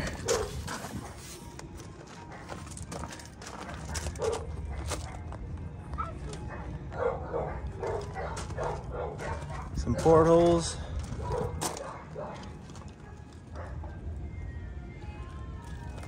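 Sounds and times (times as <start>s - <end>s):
dog barking faintly: 6.0s - 10.6s, 11.2s - 14.0s.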